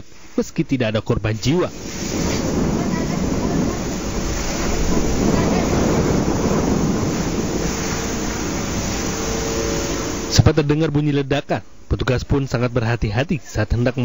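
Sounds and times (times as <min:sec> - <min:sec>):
fire hose jetting water: 0:01.3 - 0:10.5
fire burning: 0:01.3 - 0:10.6.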